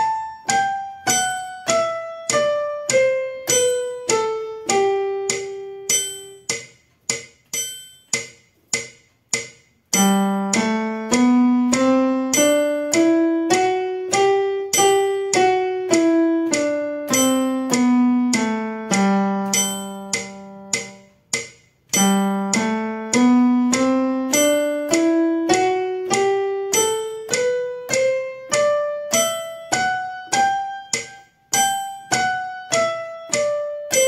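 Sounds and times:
electronic keyboard piano scale: 0:00.0 - 0:34.0.

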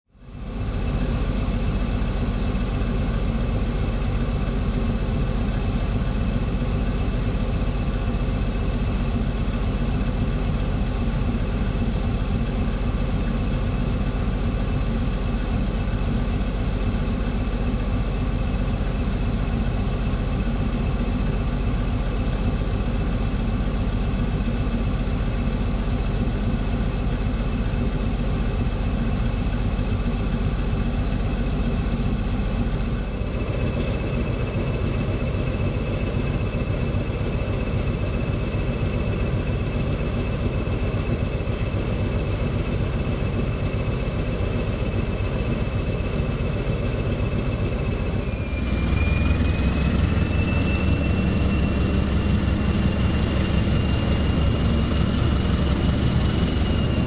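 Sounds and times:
diesel locomotive idling: 0:00.2 - 0:57.0
high-pitched whine: 0:14.9 - 0:57.0.

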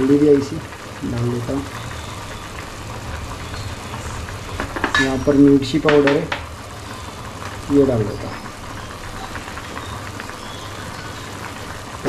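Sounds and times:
food frying in a pan: 0:00.0 - 0:12.0
gas stove hiss and rumble: 0:00.0 - 0:12.0.

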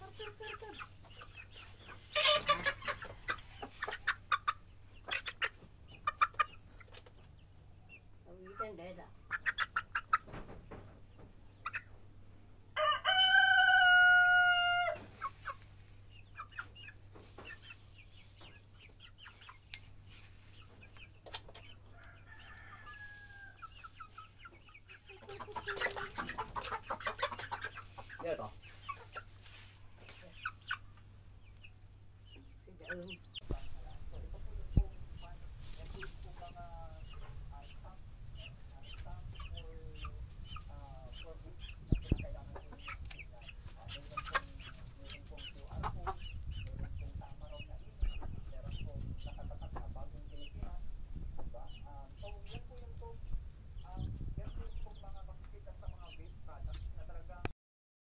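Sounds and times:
chickens clucking and squawking: 0:00.0 - 0:57.4
rooster crowing: 0:12.8 - 0:15.1, 0:21.9 - 0:23.6.

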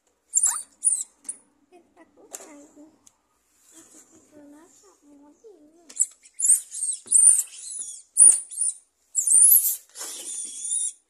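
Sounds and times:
squeaky toy ball squeaks: 0:00.3 - 0:01.4, 0:05.9 - 0:11.0.

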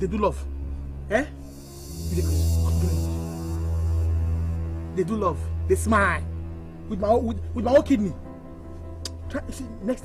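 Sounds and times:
held synth chord: 0:00.7 - 0:06.8
faint hiss: 0:01.3 - 0:04.6.

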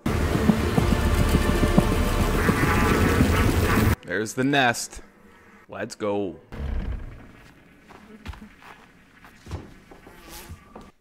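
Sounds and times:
bees buzzing: 0:00.0 - 0:04.0.

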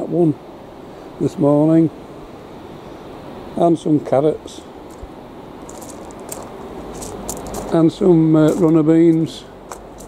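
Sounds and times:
low steady hiss: 0:00.0 - 0:10.0
footsteps crunching on gravel: 0:04.9 - 0:10.0.

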